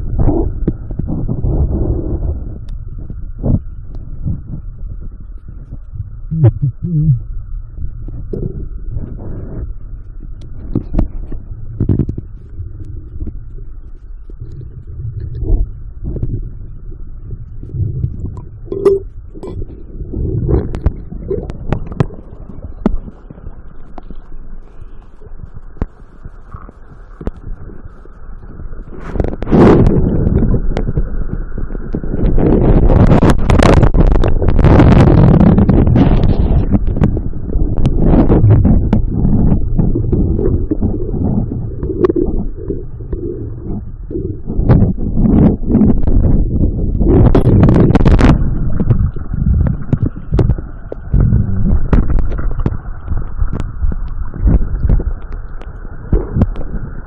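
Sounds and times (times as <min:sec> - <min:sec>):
muffled underwater rumble: 0:00.0 - 0:57.0.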